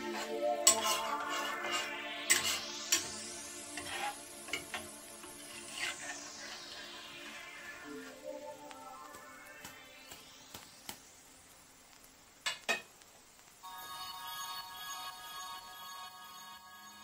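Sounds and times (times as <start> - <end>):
quiet background music: 0.0 - 17.0
ladle clinking and scraping pan: 0.1 - 3.1.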